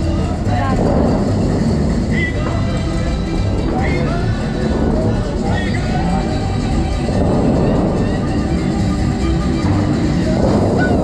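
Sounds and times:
music over loudspeakers: 0.0 - 11.0.

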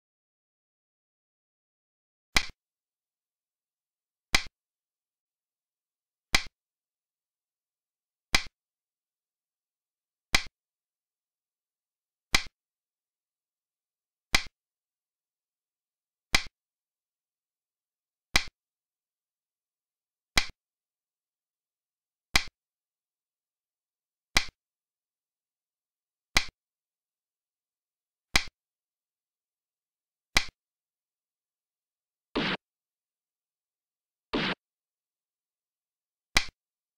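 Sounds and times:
game piece clicking on board: 2.4 - 2.6, 4.3 - 4.5, 6.3 - 6.5, 12.3 - 12.5, 14.3 - 14.5, 16.3 - 16.5, 24.4 - 24.6, 30.4 - 30.6, 36.4 - 36.6.

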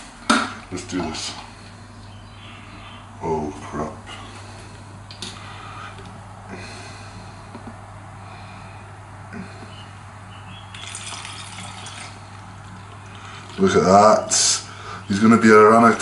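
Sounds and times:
liquid trickling into bottle: 10.7 - 13.6.

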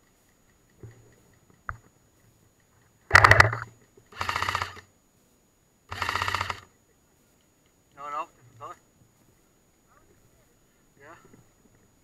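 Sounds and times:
airsoft gun full-auto bursts: 3.1 - 4.9, 5.9 - 6.7.

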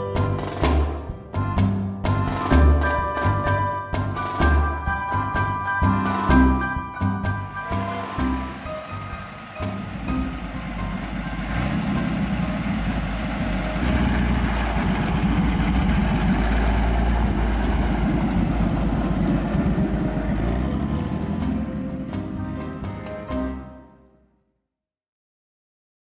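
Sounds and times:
music: 0.0 - 13.9, 19.5 - 24.6
car engine running: 7.4 - 23.4.

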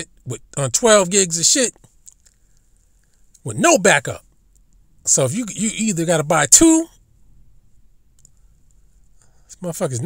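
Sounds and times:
faint sharp clicks: 8.1 - 8.8.

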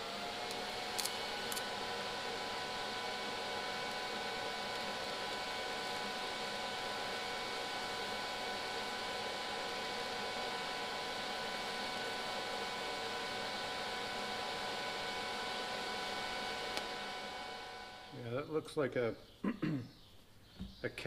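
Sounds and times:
welding hiss: 0.0 - 3.0.

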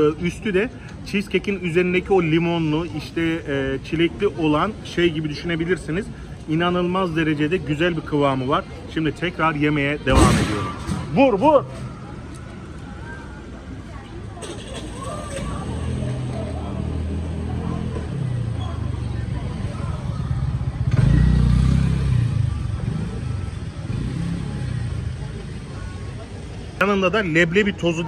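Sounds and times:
vehicle engine rumble: 0.0 - 28.0.

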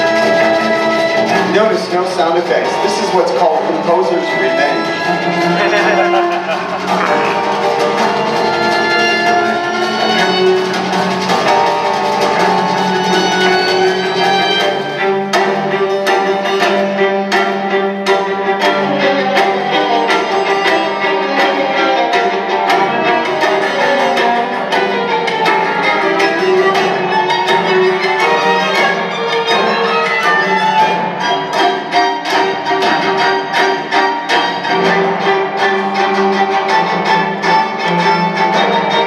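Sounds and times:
orchestral strings over speakers: 0.0 - 39.0.

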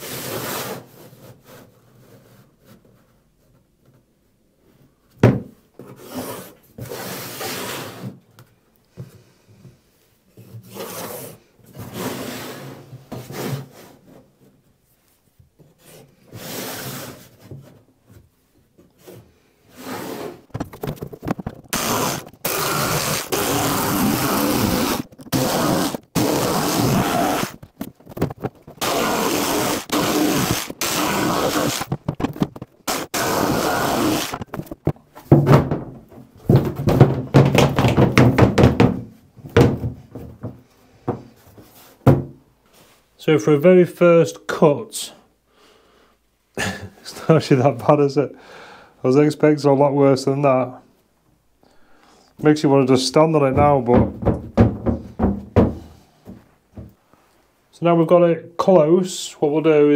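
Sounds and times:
plywood scraping against wood: 19.0 - 35.7.

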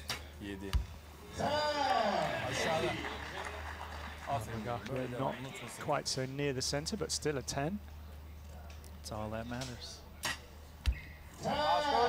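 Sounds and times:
arrow striking target: 10.2 - 10.5.

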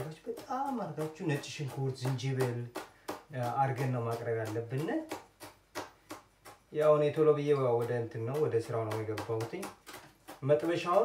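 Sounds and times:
man talking: 0.0 - 5.2, 6.7 - 9.8, 10.4 - 11.0
knife chopping on cutting board: 0.0 - 11.0.

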